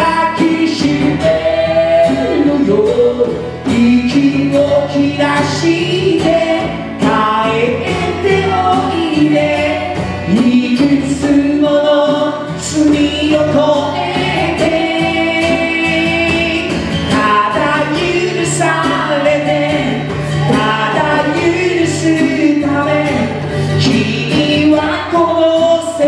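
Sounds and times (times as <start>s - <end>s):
acoustic guitar: 0.0s - 26.0s
hand drum steady beat: 0.0s - 26.0s
man singing: 0.0s - 26.0s
woman singing: 3.7s - 26.0s.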